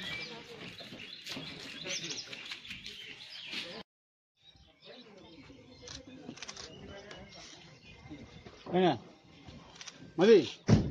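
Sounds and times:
birds chirping: 0.0s - 3.8s, 4.4s - 10.9s.

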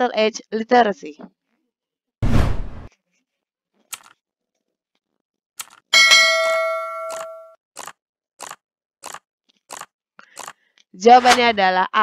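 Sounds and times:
bell-like notification chime: 6.0s - 7.5s.

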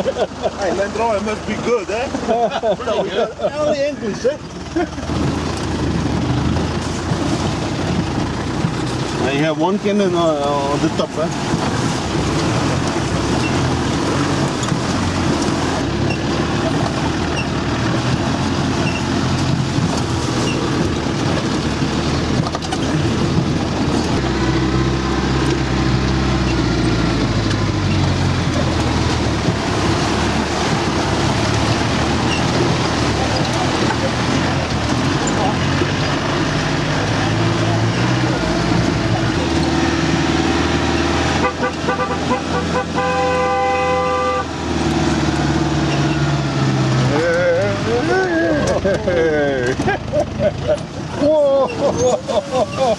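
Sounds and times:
vehicle engine revving: 0.0s - 52.9s
car horn toot: 41.4s - 44.6s.

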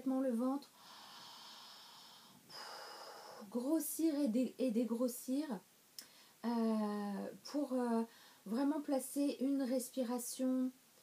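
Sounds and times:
woman breathing slowly: 0.7s - 3.5s, 6.0s - 6.4s, 8.1s - 8.5s.

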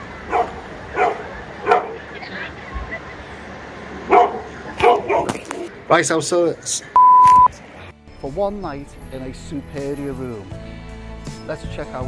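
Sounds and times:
dog barking: 0.3s - 2.0s, 4.1s - 5.7s.

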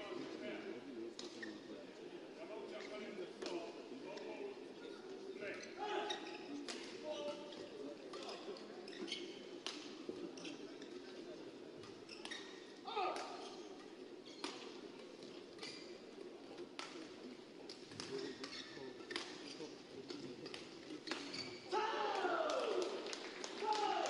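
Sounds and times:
shoes squeaking on court: 4.9s - 9.7s, 11.8s - 17.0s, 17.7s - 21.7s.

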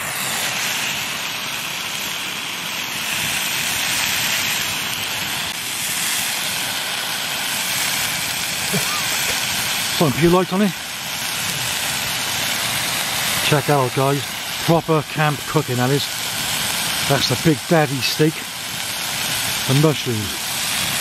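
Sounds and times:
food sizzling in a frying pan: 0.0s - 21.0s.

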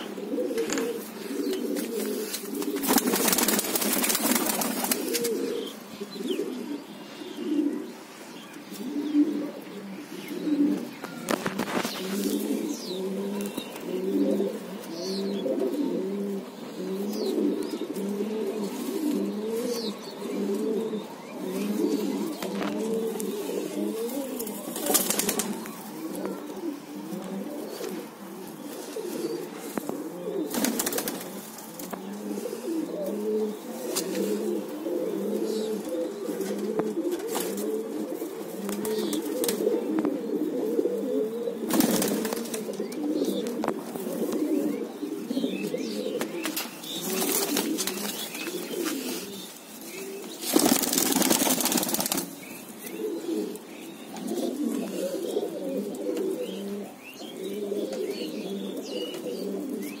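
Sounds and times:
pigeons cooing: 0.0s - 60.0s
wings flapping: 2.0s - 5.4s, 24.4s - 25.7s, 30.5s - 31.4s, 41.7s - 42.7s, 46.4s - 48.6s, 50.4s - 52.3s.

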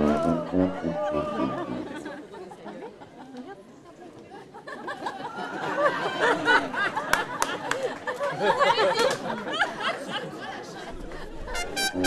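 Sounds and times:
street band with tuba: 0.0s - 2.1s, 11.4s - 12.0s
crowd chatter: 0.0s - 12.0s.

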